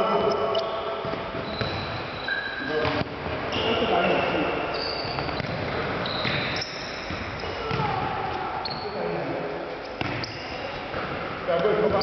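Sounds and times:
shoe squeaks: 0:00.2 - 0:07.8, 0:08.6 - 0:09.1, 0:09.8 - 0:10.7
ball kicked and bouncing: 0:01.0 - 0:01.8, 0:02.8 - 0:03.4, 0:05.0 - 0:08.0, 0:10.0 - 0:11.2
players shouting: 0:07.4 - 0:08.6.

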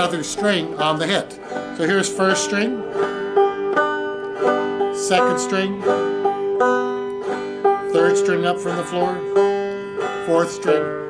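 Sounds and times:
banjo played clawhammer style: 0:00.0 - 0:11.0.

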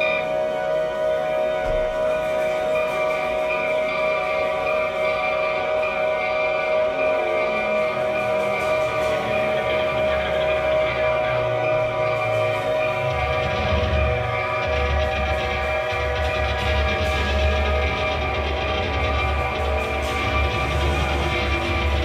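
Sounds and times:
held droning tones: 0:00.0 - 0:22.0.

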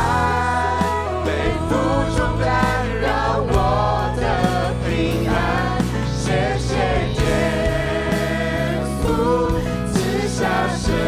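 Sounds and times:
band accompaniment: 0:00.0 - 0:11.0
voices singing together: 0:00.0 - 0:11.0.

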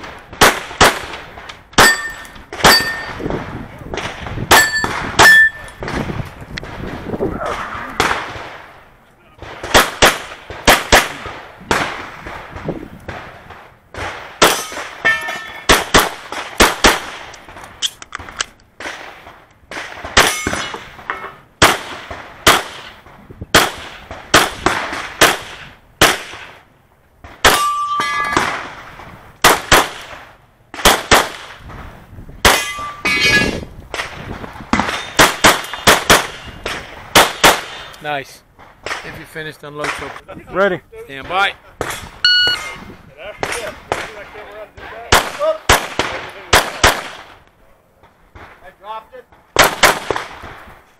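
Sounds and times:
pistol shots: 0:00.0 - 0:03.3, 0:09.4 - 0:13.3, 0:13.9 - 0:17.9, 0:21.6 - 0:26.5, 0:29.4 - 0:30.2, 0:30.8 - 0:31.6, 0:33.9 - 0:37.9, 0:45.1 - 0:47.4, 0:49.6 - 0:50.6
metallic ring of steel target: 0:01.8 - 0:03.2, 0:04.5 - 0:05.8, 0:14.5 - 0:15.7, 0:27.5 - 0:28.4, 0:32.5 - 0:33.6, 0:42.2 - 0:42.9.

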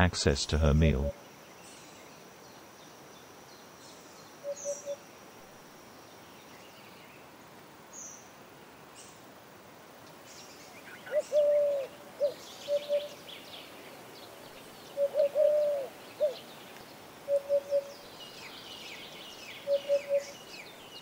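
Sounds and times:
dove cooing: 0:04.4 - 0:05.0, 0:11.0 - 0:13.2, 0:15.0 - 0:16.4, 0:17.2 - 0:18.0, 0:19.6 - 0:20.4
small birds chirping: 0:10.0 - 0:21.0.

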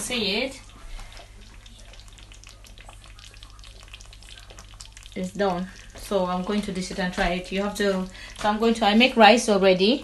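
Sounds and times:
stew simmering with pops and sizzles: 0:00.0 - 0:10.0.

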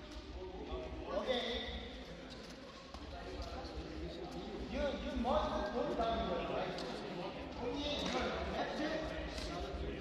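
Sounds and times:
voices murmuring in echoing hall: 0:00.0 - 0:10.0.

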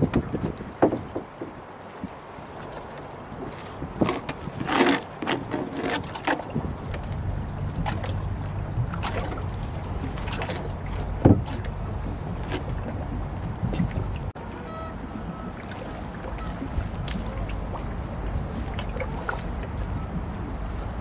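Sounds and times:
steady low rumble: 0:06.4 - 0:21.0.

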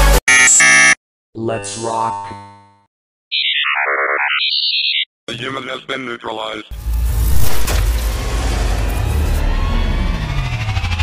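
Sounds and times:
music: 0:08.2 - 0:11.0.

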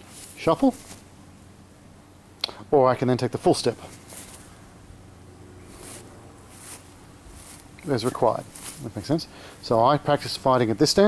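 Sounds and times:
boots stepping on grass: 0:00.0 - 0:01.1, 0:03.8 - 0:04.5, 0:05.6 - 0:09.2
low background noise: 0:00.0 - 0:11.0.

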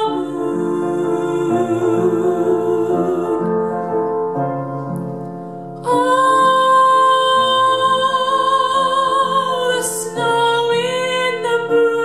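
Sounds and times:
piano chords: 0:00.0 - 0:12.0
girl singing with vibrato: 0:05.8 - 0:12.0.

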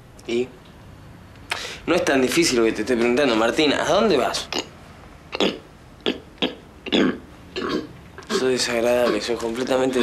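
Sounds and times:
man making guttural throat noises: 0:05.3 - 0:09.2.

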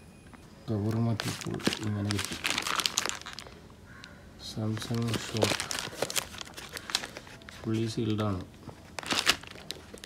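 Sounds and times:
plastic mailer crinkling: 0:00.7 - 0:10.0
cardboard box rustling: 0:01.2 - 0:03.4, 0:04.7 - 0:08.0.

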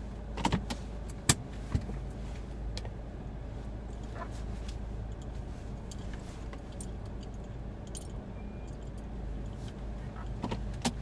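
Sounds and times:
clicks of car controls: 0:00.3 - 0:01.9, 0:09.6 - 0:11.0.

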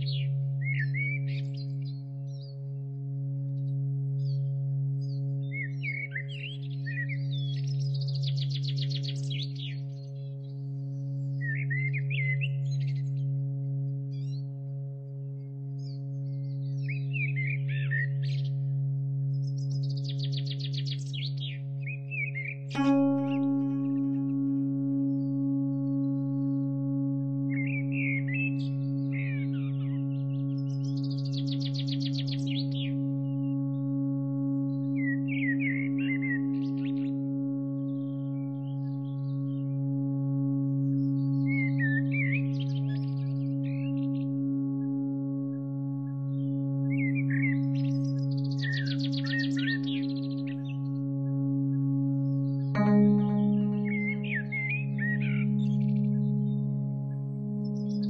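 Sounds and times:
low drone of held tones: 0:00.0 - 0:58.0
bird chirps and trills: 0:15.8 - 0:58.0.

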